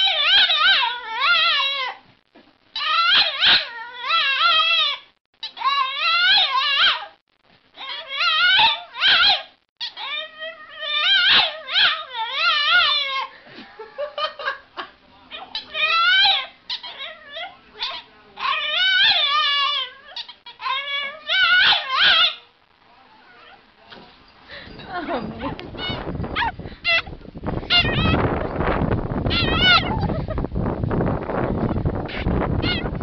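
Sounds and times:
puppy crying: 0:00.0 - 0:02.0, 0:02.8 - 0:07.2, 0:07.8 - 0:13.3, 0:15.3 - 0:22.5, 0:23.2 - 0:23.6, 0:25.0 - 0:27.1, 0:27.7 - 0:28.2, 0:29.3 - 0:30.2, 0:32.1 - 0:33.0.

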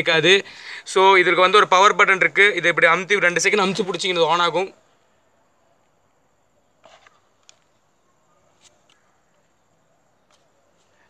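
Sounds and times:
plastic headphones clicking: 0:06.8 - 0:07.8.

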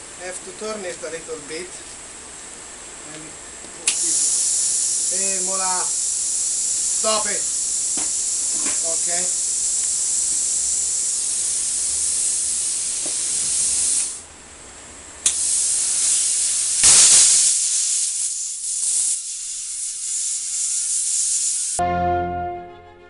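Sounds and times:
torch click: 0:03.8 - 0:04.6, 0:15.2 - 0:16.2
plasma cutter torch hissing: 0:03.8 - 0:14.2, 0:15.2 - 0:21.8.

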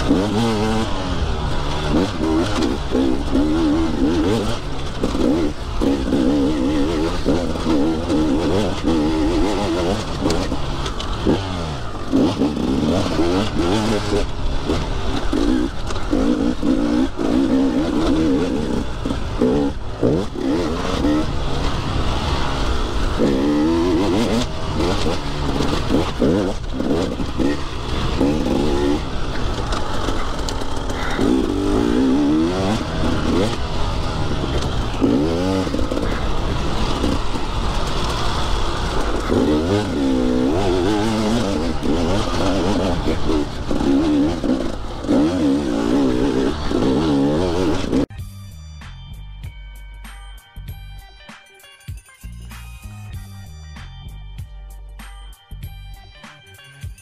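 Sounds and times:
dirt bike engine revving: 0:00.0 - 0:48.1.

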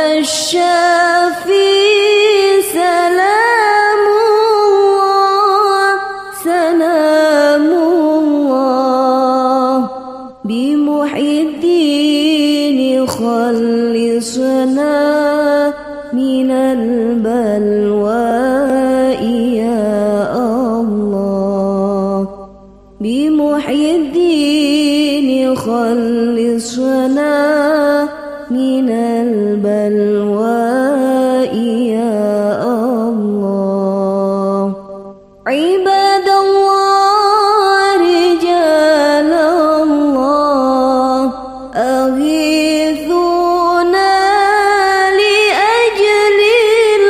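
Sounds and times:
person singing religious song: 0:00.0 - 0:47.0.

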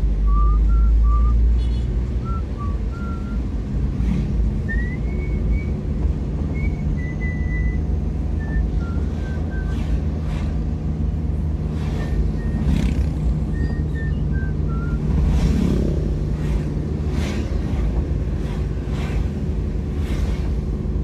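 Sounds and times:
passing vehicle rushes: 0:00.0 - 0:21.0
vehicle engine and road rumble: 0:00.0 - 0:21.0.

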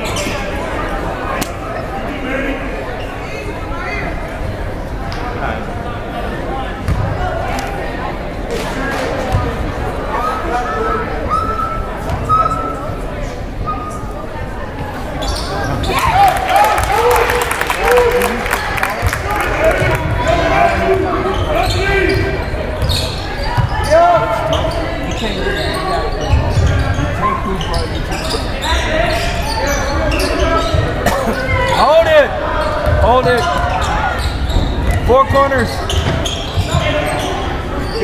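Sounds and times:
people shouting in a gym: 0:10.0 - 0:13.0, 0:15.4 - 0:28.0.

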